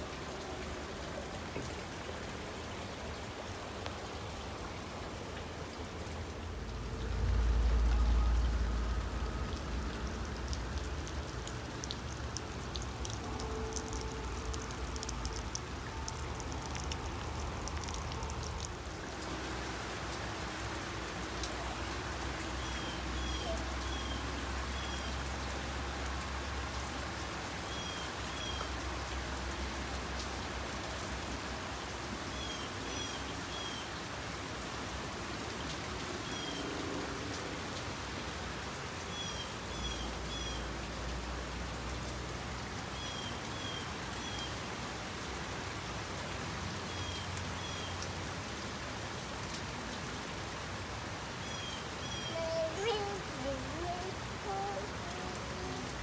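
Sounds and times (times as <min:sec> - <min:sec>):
steady rain falling: 0:00.0 - 0:56.0.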